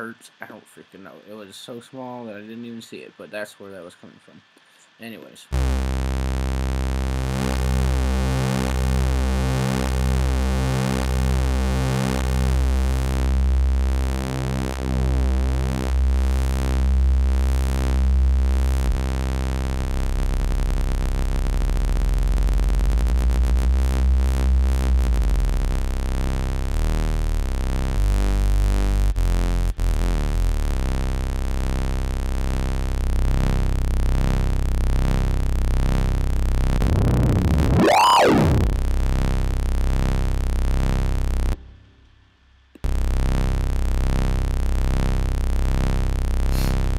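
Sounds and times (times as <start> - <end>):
wavering synthesizer bass tone: 5.6 - 41.6, 42.8 - 46.9
synthesizer pitch sweep: 5.6 - 41.8.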